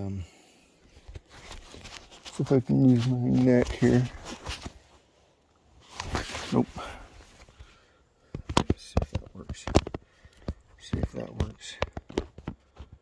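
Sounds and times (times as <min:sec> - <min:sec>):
handling clicks and knocks: 0:08.3 - 0:13.0.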